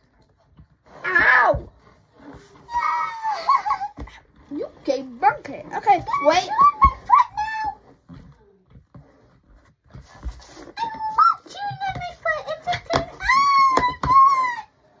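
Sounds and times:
child squealing and whining: 1.0 - 1.7, 2.6 - 4.1, 13.1 - 14.9.

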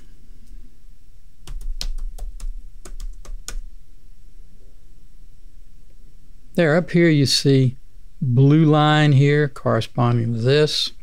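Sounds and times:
typing on computer keyboard: 1.4 - 3.7.

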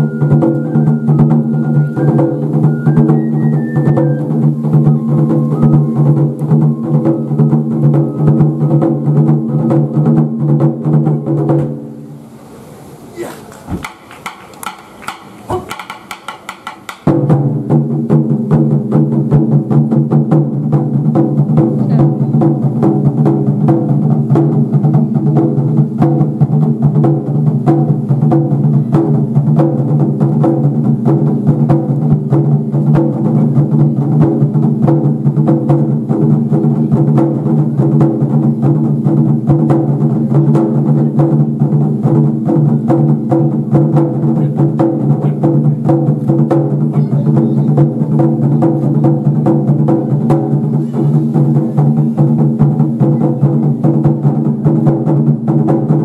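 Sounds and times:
barrel drums struck with sticks: 3.9 - 12.0, 13.6 - 56.0.

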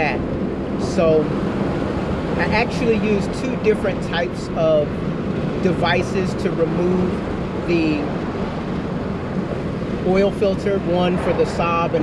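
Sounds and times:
road and wind noise inside vehicle: 0.0 - 12.0.

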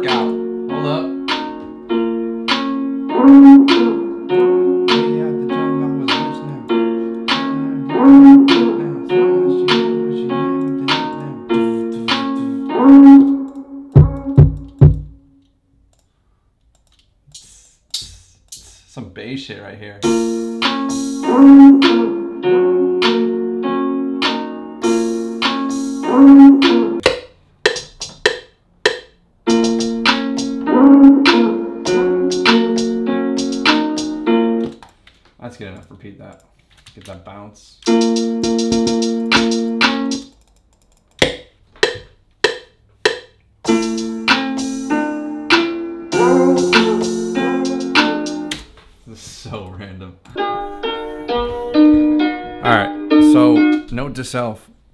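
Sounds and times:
melodic loop: 0.0 - 15.3, 20.0 - 34.8, 37.8 - 40.3, 41.2 - 48.6, 50.4 - 53.9.

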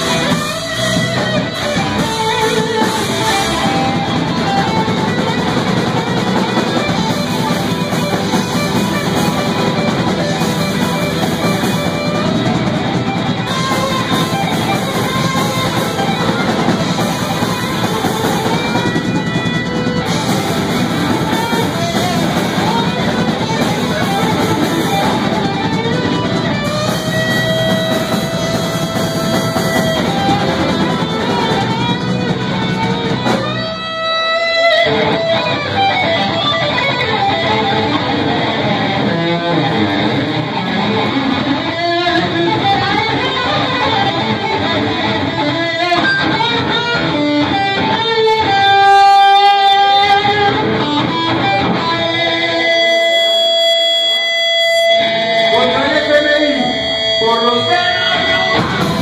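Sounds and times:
bass: 0.0 - 59.0
drums: 0.0 - 59.0
electric guitar lead with bends: 0.0 - 59.0
keyboard: 0.0 - 59.0.

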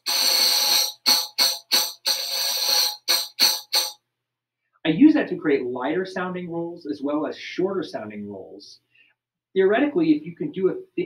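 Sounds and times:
tambourine finger roll: 0.0 - 4.0.

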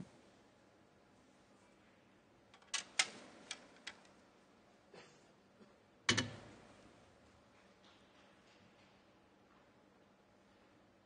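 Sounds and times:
snooker equipment clicks: 2.6 - 4.2.

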